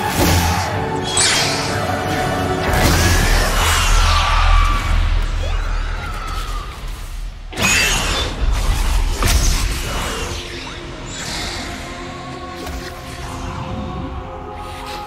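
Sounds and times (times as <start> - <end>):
film score music: 0.0 - 15.0.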